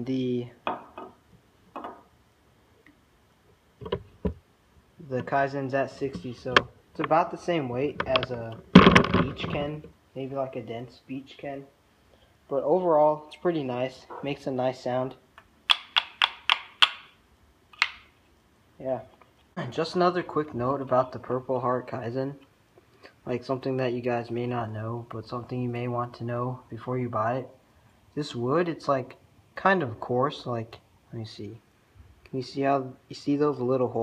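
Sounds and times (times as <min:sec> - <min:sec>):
wooden clicks of kendama: 0:15.4 - 0:18.1.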